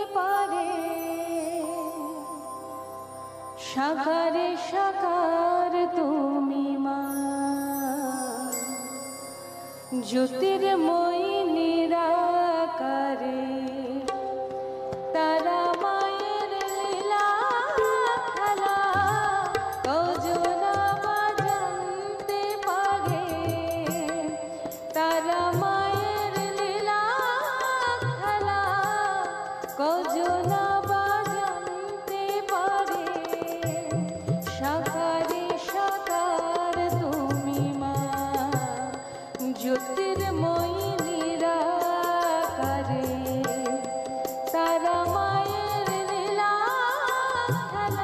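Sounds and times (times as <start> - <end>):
harmonium melody: 0.0 - 48.0
tabla drum strokes: 13.7 - 48.0.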